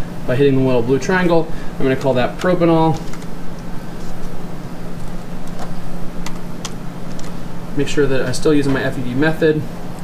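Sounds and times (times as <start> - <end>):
mechanical hum and hiss: 0.0 - 10.0.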